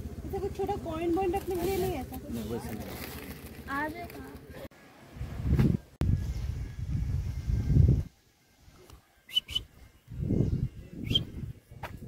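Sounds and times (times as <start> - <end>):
high whistle-like chirps: 9.3 - 9.9, 11.0 - 11.4.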